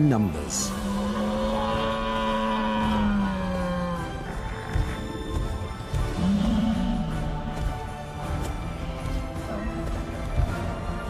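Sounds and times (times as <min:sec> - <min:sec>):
soundtrack music: 0:00.0 - 0:11.0
long low creature call: 0:00.7 - 0:04.8, 0:06.0 - 0:07.6.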